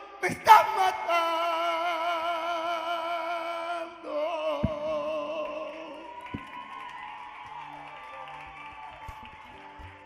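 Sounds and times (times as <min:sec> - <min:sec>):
audience applause: 0:05.4 - 0:10.0.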